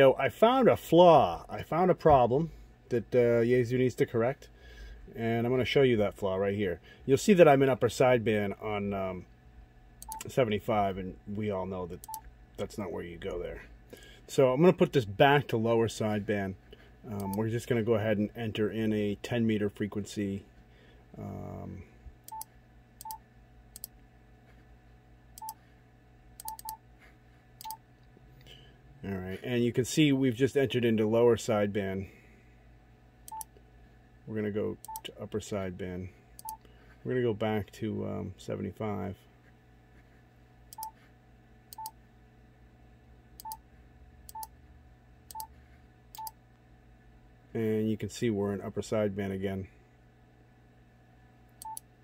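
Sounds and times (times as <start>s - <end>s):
keypad beeps with clicks: 10.0s - 10.3s, 26.4s - 26.8s, 46.2s - 46.4s
keypad beeps: 26.4s - 26.8s.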